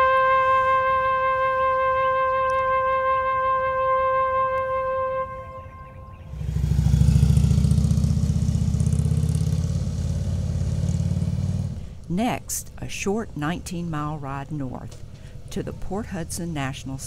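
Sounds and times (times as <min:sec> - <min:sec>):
trumpet holding a long note: 0:00.0 - 0:06.8
motorcycle engine riding away: 0:05.7 - 0:11.9.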